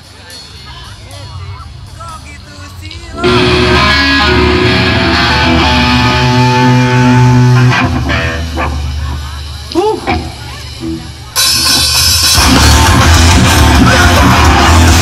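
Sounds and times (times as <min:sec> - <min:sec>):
voices: 0:00.0 - 0:11.8
metal band playing live: 0:00.0 - 0:15.0
held guitar notes ringing: 0:00.9 - 0:09.1.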